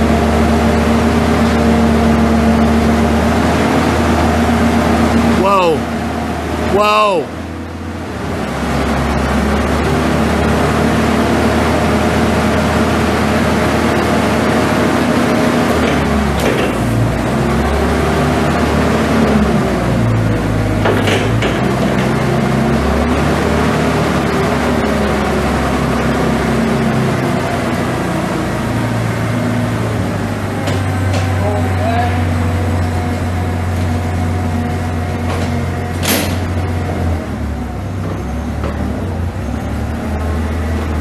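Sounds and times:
forklift engine revving: 0:00.0 - 0:41.0
clunk: 0:20.8 - 0:22.1, 0:35.2 - 0:36.6.

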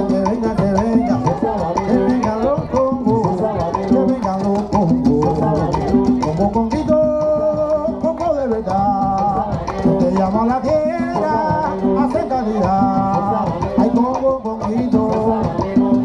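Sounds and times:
conga drums: 0:00.0 - 0:16.0
person singing: 0:00.0 - 0:16.0.

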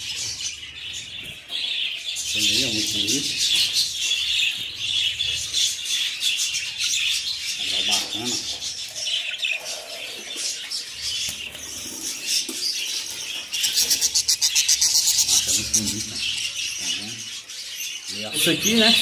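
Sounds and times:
budgerigars chattering and chirping: 0:00.0 - 0:19.0.

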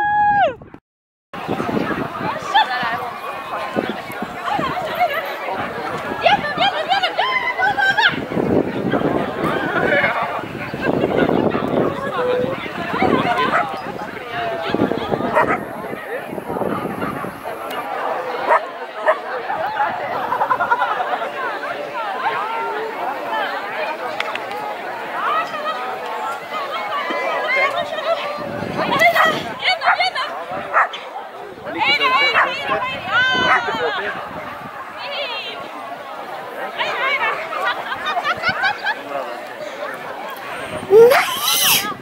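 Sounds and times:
people's voices: 0:01.4 - 0:42.0
dogs barking and yipping: 0:11.8 - 0:13.9, 0:15.2 - 0:15.8, 0:28.9 - 0:31.0, 0:32.2 - 0:32.8, 0:40.4 - 0:41.9
dog barking and yelping: 0:15.4 - 0:15.7, 0:40.6 - 0:41.8.

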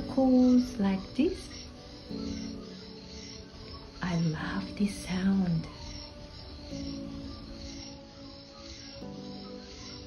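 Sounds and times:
background music with sustained chords: 0:00.0 - 0:10.0.

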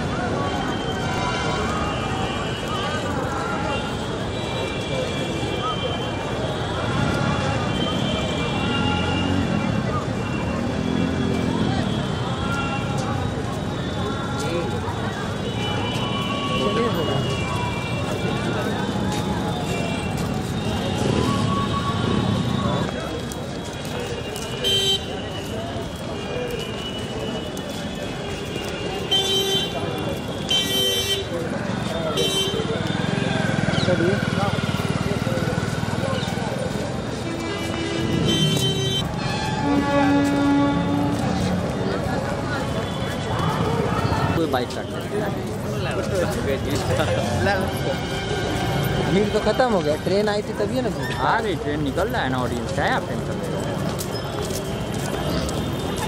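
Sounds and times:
crowd chatter: 0:00.0 - 0:56.0
street noise: 0:00.0 - 0:56.0
footsteps on pavement: 0:00.1 - 0:56.0
vehicle horns honking: 0:00.5 - 0:23.0, 0:23.8 - 0:35.0, 0:37.0 - 0:41.6
low crowd rumble: 0:31.2 - 0:49.1.

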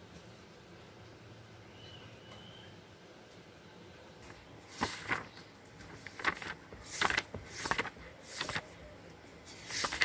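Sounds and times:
book pages turning: 0:04.2 - 0:10.0.

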